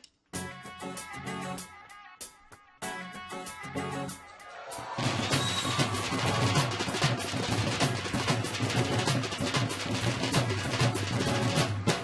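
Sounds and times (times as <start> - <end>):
drum kit: 0.0 - 12.0
dhol drums beating: 4.8 - 12.0.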